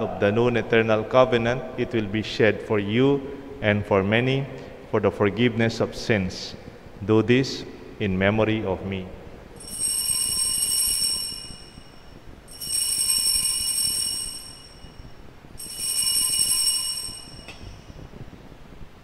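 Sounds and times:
altar bells ringing: 9.6 - 18.0.

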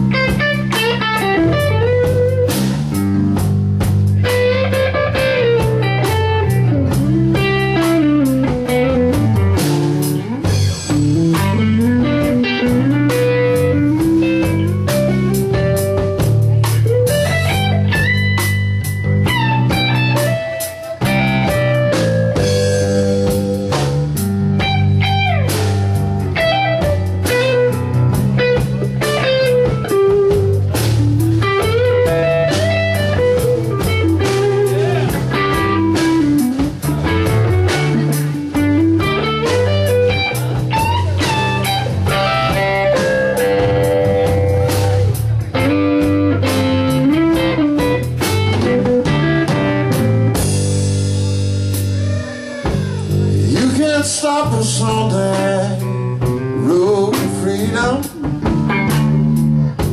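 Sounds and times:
bass guitar: 0.0 - 59.9
drum kit: 0.0 - 59.9
lead electric guitar bending notes: 0.0 - 59.9.

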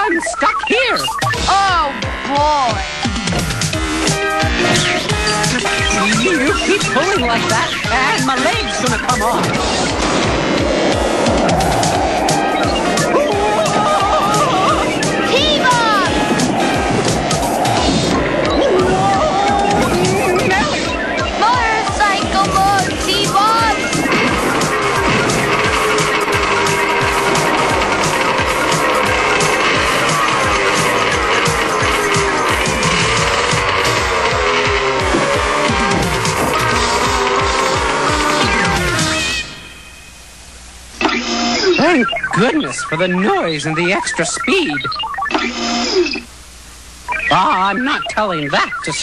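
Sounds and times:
fast cartoon music: 0.0 - 39.8, 41.2 - 46.3, 47.1 - 49.0
cartoon character voice speaking: 15.3 - 16.2, 21.4 - 23.8.

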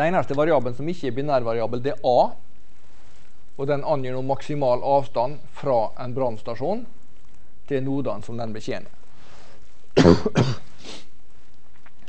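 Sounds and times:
man coughing: 10.0 - 10.7.

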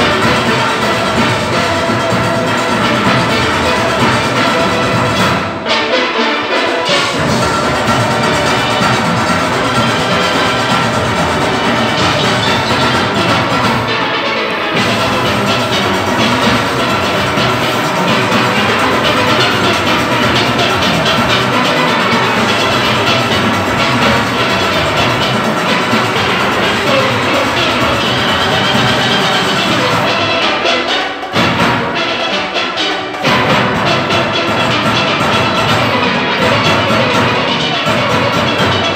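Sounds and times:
drums and percussion rhythm: 0.0 - 38.9
steel band playing: 0.0 - 38.9.

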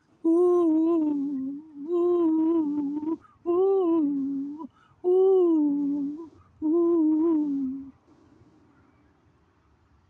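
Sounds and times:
person humming: 0.2 - 8.0.

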